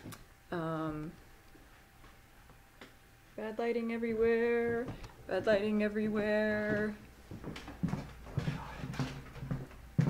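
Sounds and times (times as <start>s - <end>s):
footsteps on a hard floor: 4.1s - 10.0s.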